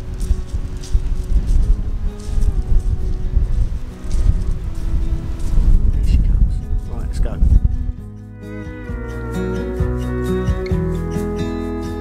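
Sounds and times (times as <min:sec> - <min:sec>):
wind buffeting microphone: 0:00.0 - 0:10.9
soft background music: 0:00.0 - 0:12.0.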